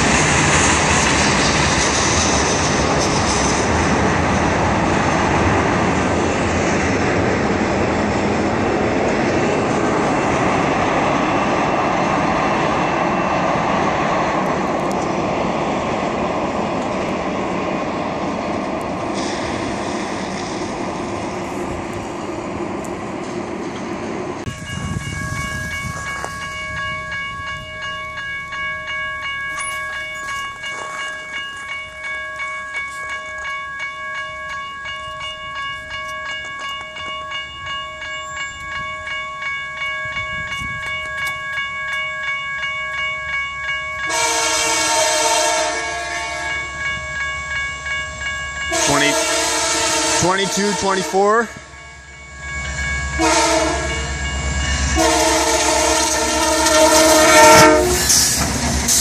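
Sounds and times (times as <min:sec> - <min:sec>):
train rolling past: 0:00.0 - 0:59.0
railroad crossing bell ringing: 0:00.8 - 0:59.0
locomotive horn blast: 0:44.1 - 0:46.7, 0:48.7 - 0:51.3, 0:53.2 - 0:54.1, 0:54.9 - 0:58.2.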